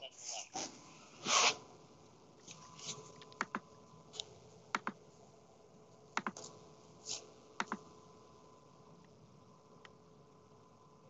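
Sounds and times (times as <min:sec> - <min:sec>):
mouse and keyboard clicks: 0:03.3 - 0:03.6, 0:04.8 - 0:05.0, 0:06.2 - 0:06.5, 0:07.6 - 0:07.8.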